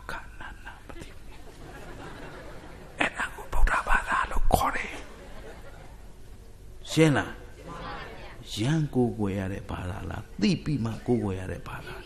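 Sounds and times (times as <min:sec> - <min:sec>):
man whispering into microphone: 0:00.0 - 0:01.0, 0:03.0 - 0:05.0.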